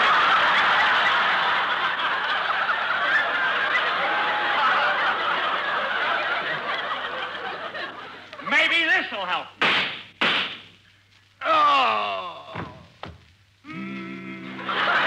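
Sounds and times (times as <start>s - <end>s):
studio audience laughing: 0.0s - 8.3s, 14.5s - 15.0s.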